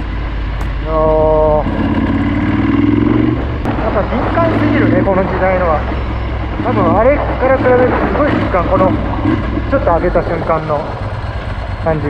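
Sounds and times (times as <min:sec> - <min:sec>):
motorcycle engine running: 0:00.0 - 0:12.0
rider talking: 0:00.7 - 0:01.9, 0:03.7 - 0:12.0.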